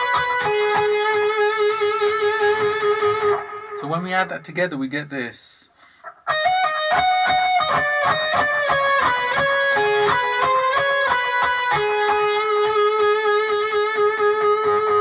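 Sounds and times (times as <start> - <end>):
electric guitar lead with vibrato: 0.0 - 3.8, 6.3 - 15.0.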